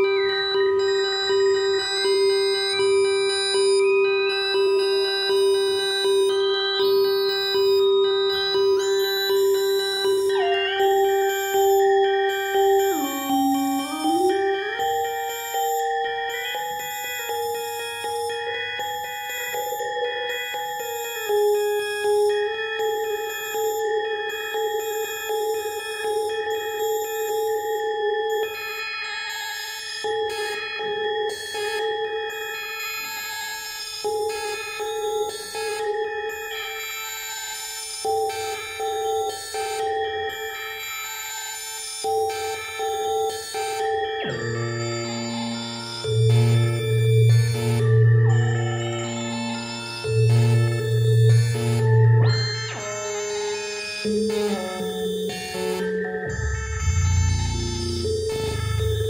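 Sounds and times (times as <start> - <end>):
buzzy electronic synth note: 46.2 - 59.0
higher electronic tone: 54.0 - 59.0.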